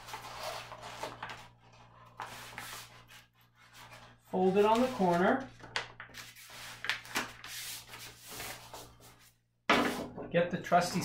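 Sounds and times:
paper being folded and rubbed: 0:00.0 - 0:05.4, 0:06.0 - 0:09.4.

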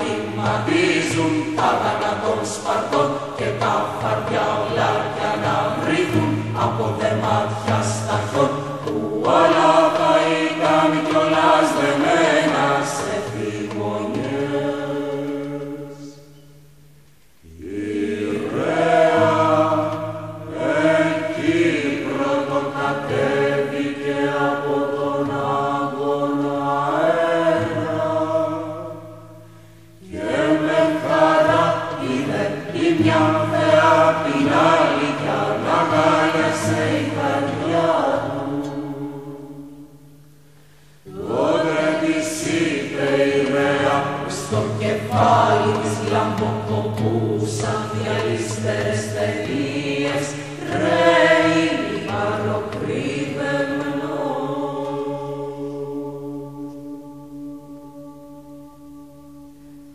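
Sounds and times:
voices chanting together: 0:00.0 - 0:16.4, 0:17.4 - 0:59.9.

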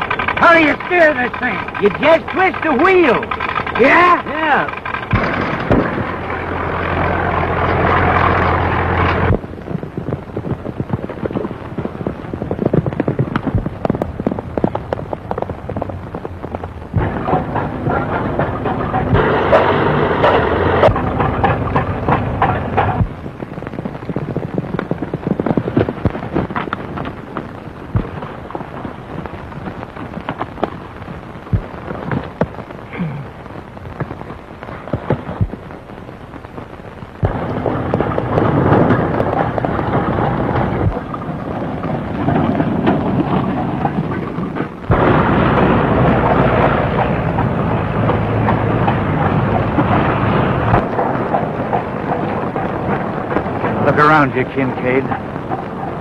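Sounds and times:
film track crackle and hiss: 0:00.0 - 0:56.0
old car engine rattling: 0:00.0 - 0:56.0.

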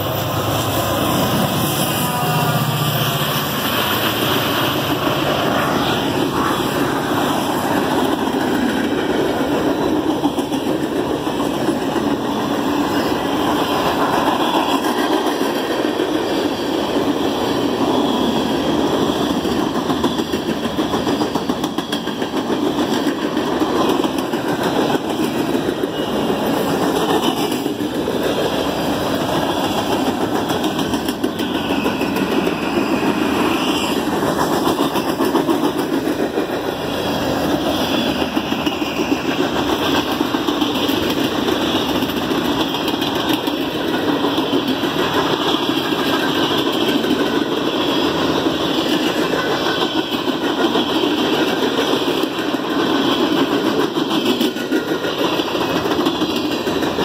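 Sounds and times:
freight train wheels rumbling: 0:00.0 - 0:57.0.

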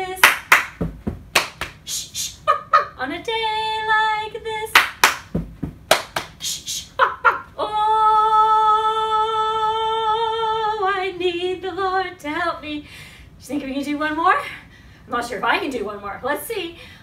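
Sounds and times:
woman singing: 0:00.0 - 0:00.4, 0:03.0 - 0:04.8, 0:07.6 - 0:12.8
claps shushes and stomp: 0:00.2 - 0:01.8, 0:04.8 - 0:06.4.

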